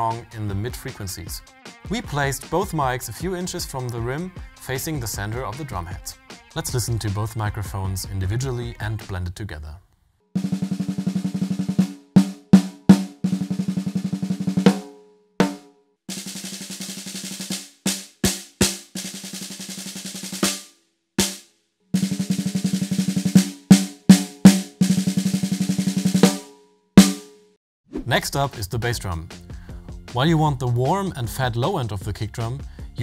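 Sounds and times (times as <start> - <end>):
snare drum struck with sticks: 10.4 - 27.4.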